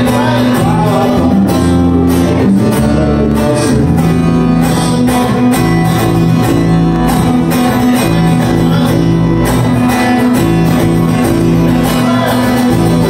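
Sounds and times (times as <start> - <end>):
electric bass line: 0.0 - 13.0
strummed acoustic guitar: 0.0 - 13.0.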